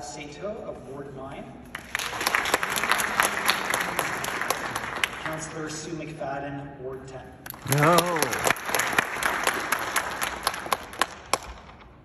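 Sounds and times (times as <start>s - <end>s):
audience applause: 1.8s - 5.4s, 7.5s - 11.5s.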